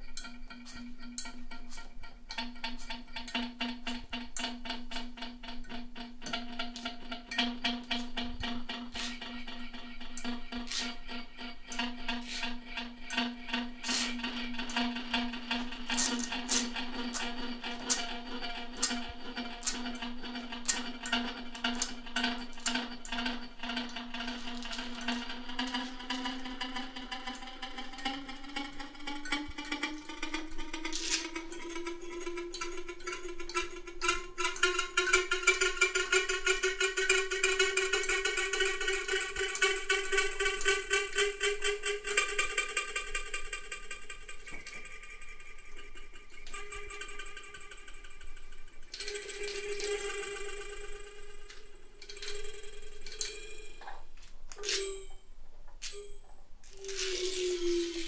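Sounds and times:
pulsing electronic drone: 0:00.0 - 0:54.0.

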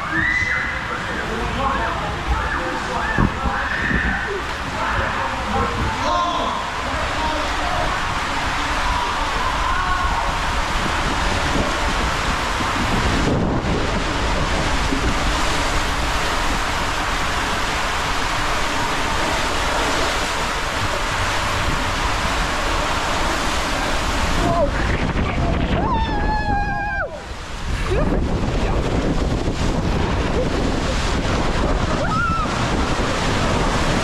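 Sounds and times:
rush of water in slide tube: 0:00.0 - 0:34.0.

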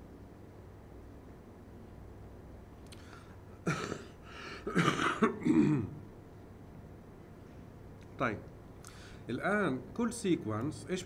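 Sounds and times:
man clearing his throat: 0:03.6 - 0:06.0.

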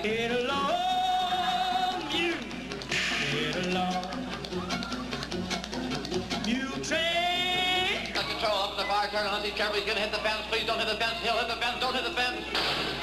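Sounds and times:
live band playing: 0:00.0 - 0:08.6
crashing noise burst: 0:12.5 - 0:13.0
drum hits: 0:12.5 - 0:13.0.

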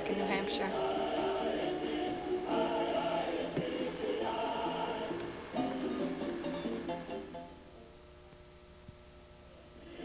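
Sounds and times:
choir singing: 0:00.2 - 0:06.2, 0:09.8 - 0:10.0.

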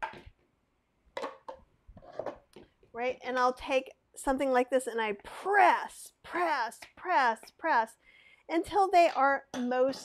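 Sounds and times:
plastic kitchenware knocking: 0:01.2 - 0:02.5.

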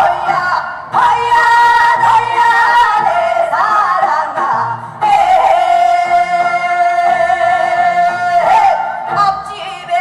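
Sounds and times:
woman singing folk song: 0:00.0 - 0:10.0.

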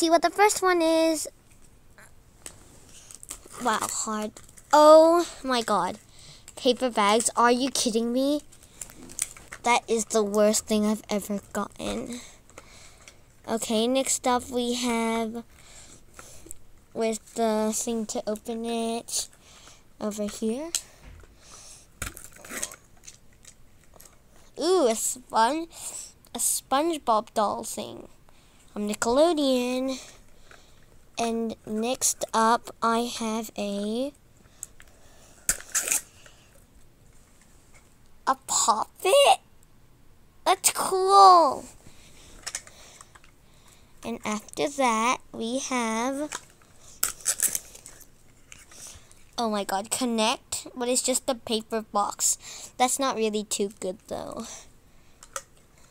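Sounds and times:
plastic and wrapper crackle: 0:02.4 - 0:04.8, 0:08.4 - 0:09.7, 0:46.2 - 0:49.4
wrapper rustling: 0:46.3 - 0:48.8.

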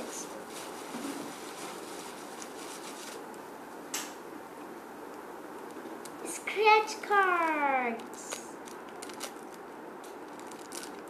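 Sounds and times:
plastic packet crinkling: 0:00.4 - 0:03.4, 0:07.2 - 0:11.0.

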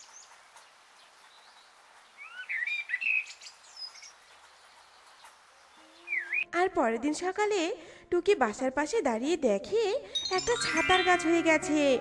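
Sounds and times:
bird chirps: 0:01.3 - 0:06.6.

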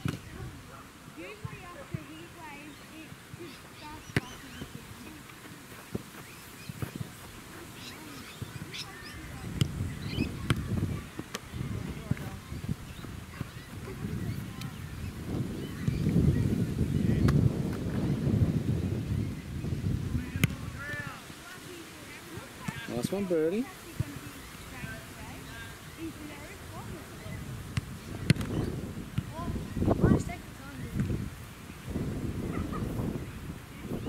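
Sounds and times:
football kick thumps: 0:04.1 - 0:04.8, 0:09.4 - 0:11.4, 0:20.3 - 0:21.1, 0:27.7 - 0:29.3
wind rumble on microphone: 0:08.2 - 0:21.3, 0:24.0 - 0:34.0.

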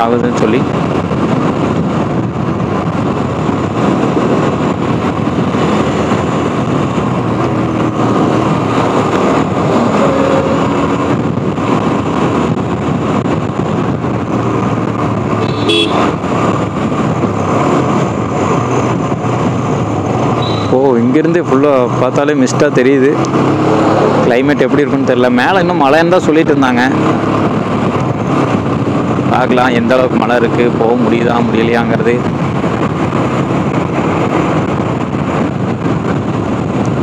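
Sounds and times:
road and engine noise inside vehicle: 0:00.0 - 0:37.0.

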